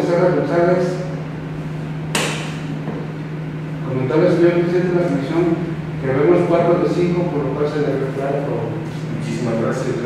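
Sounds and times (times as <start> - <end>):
low electrical hum: 0.0 - 10.0
sharp knock: 2.1 - 3.0.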